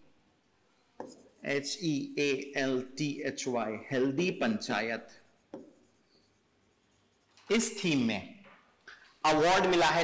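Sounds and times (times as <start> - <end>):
pen writing on a board: 1.0 - 1.4, 5.0 - 7.8.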